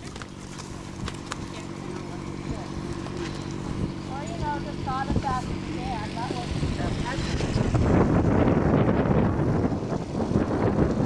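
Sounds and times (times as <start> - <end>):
horse hooves thudding on sand: 0.0 - 8.2.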